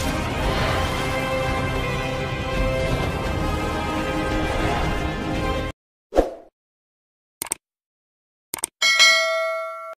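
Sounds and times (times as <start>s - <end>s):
quick clicks: 7.4s - 7.6s, 8.5s - 8.8s
notification bell ding: 8.8s - 10.0s.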